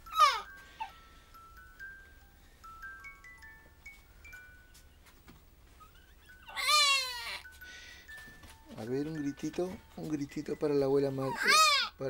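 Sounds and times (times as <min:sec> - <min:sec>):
baby squealing: 0:00.0 - 0:00.9, 0:05.8 - 0:07.5, 0:11.2 - 0:12.0
tinkling toy melody: 0:00.0 - 0:05.1, 0:05.7 - 0:11.4.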